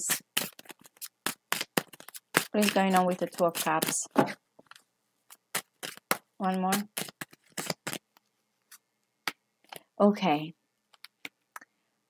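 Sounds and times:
cards shuffling and snapping: 0:00.0 - 0:09.9, 0:10.9 - 0:11.4.

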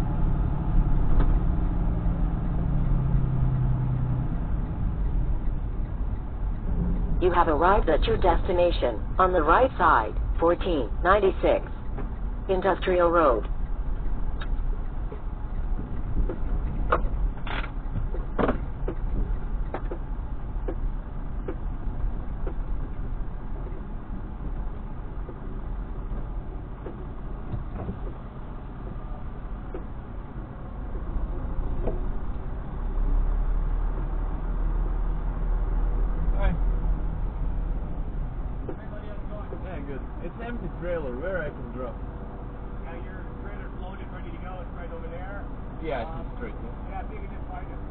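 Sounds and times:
diesel truck engine rumble: 0:00.0 - 0:47.9
sharp clicks: 0:11.6 - 0:23.0.

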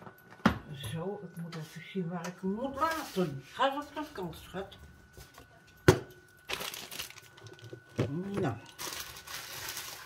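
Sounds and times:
plastic rustling and knocking: 0:05.3 - 0:10.0.

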